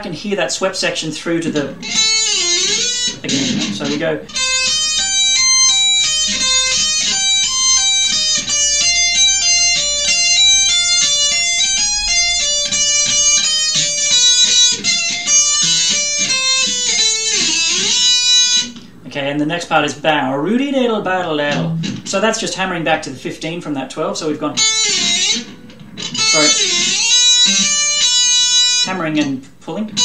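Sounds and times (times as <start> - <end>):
electric guitar heavy metal lead: 1.5 - 18.8, 24.6 - 28.4.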